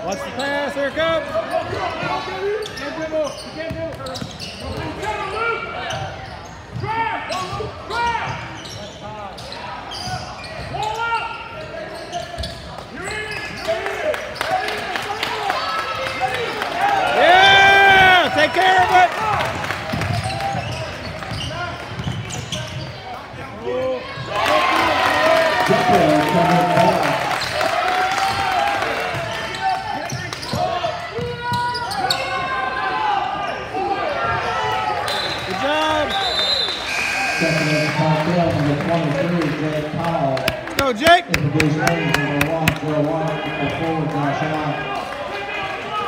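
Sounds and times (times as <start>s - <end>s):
people shouting and talking: 0.0s - 46.0s.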